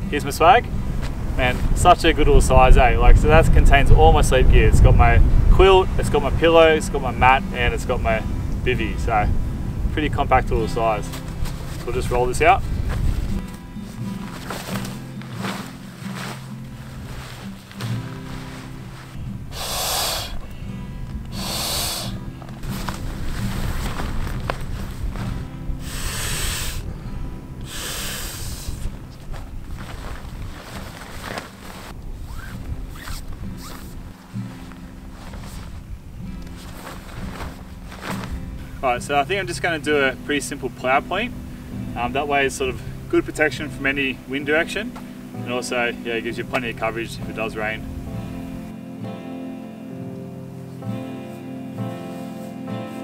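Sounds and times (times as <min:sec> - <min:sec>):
background music with low notes: 0:00.0 - 0:53.0
rustling of canvas: 0:10.3 - 0:20.5, 0:21.2 - 0:26.8, 0:27.6 - 0:41.3
breaths blown into pillow valve: 0:13.4 - 0:20.5, 0:21.3 - 0:23.9, 0:25.4 - 0:26.9, 0:27.6 - 0:29.1.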